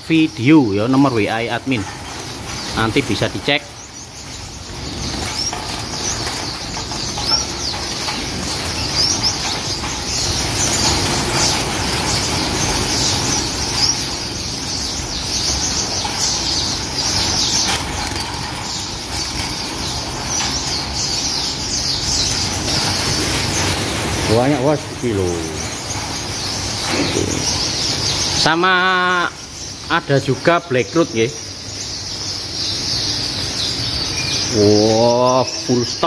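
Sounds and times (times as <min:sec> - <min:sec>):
finches chirping: 0:00.0 - 0:36.0
wings fluttering: 0:00.2 - 0:36.0.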